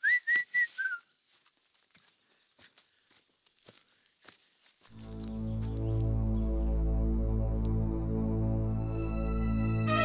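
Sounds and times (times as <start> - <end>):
man whistling: 0.0 - 1.1.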